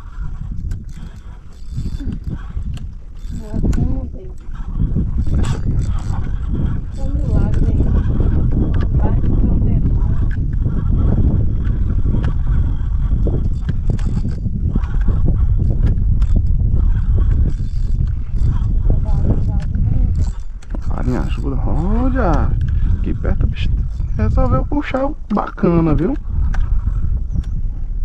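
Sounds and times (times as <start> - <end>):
boat engine rumble: 0.0 - 28.0.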